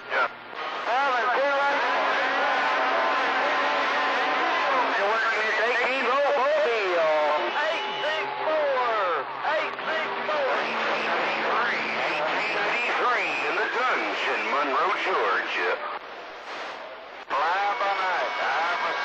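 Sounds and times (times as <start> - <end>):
garbled radio voices: 0.0 - 16.0, 17.2 - 19.0.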